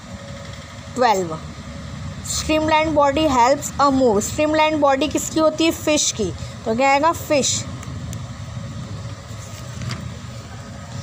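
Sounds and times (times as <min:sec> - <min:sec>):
low background rumble: 0:00.0 - 0:11.0
paper rustle: 0:09.3 - 0:10.1.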